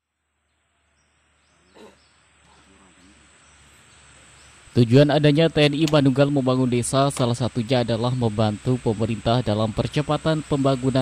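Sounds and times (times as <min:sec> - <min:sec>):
faint outdoor background: 0:00.0 - 0:11.0
animal call: 0:01.6 - 0:03.2.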